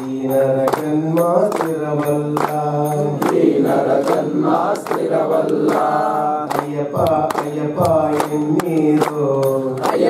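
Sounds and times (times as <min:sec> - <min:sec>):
hand claps: 0:00.0 - 0:10.0
men singing a chant: 0:00.0 - 0:10.0.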